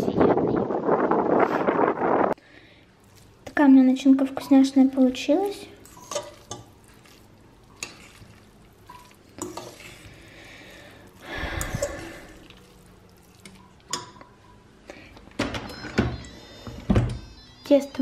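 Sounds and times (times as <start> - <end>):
spoon scraping a saucepan: 5.8 - 10.2.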